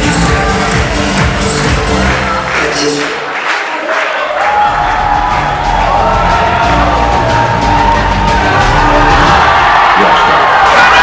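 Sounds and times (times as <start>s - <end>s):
music with strong bass: 0.0s - 2.6s, 4.7s - 10.0s
crowd cheering: 1.7s - 11.0s.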